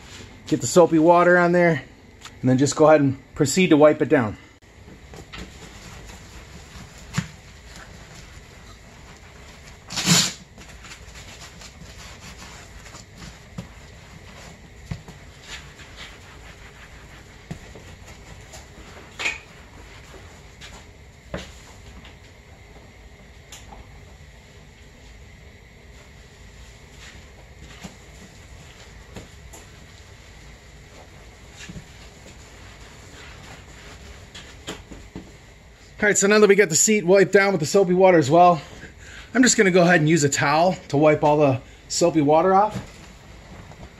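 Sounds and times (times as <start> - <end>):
wet sponge rubbing and squishing: 5.0 - 20.9, 26.0 - 35.2.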